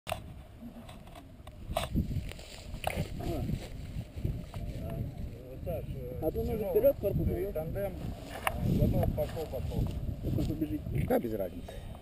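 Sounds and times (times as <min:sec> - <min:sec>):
wind rumbling on microphone: 0:00.1 - 0:12.0.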